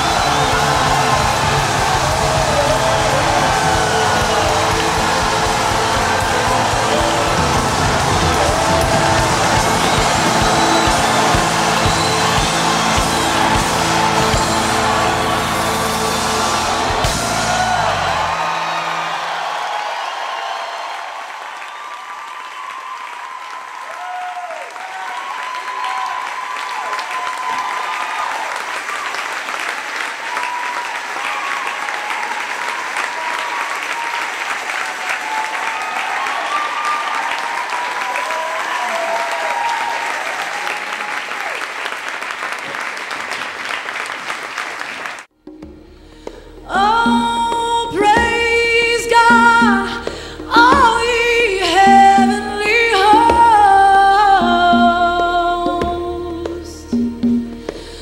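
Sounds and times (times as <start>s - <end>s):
voices calling out: 0.0s - 19.1s
music: 0.0s - 20.2s, 45.3s - 58.0s
audience applauding: 0.0s - 45.3s.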